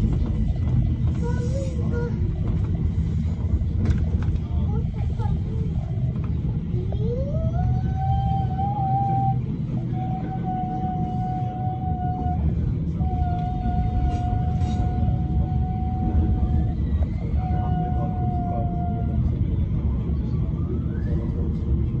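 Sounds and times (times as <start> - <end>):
train wheels rumbling on track: 0.0 - 22.0.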